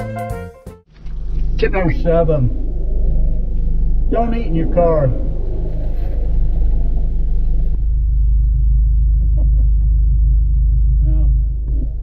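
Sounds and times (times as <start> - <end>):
car engine and road noise: 0.9 - 9.2.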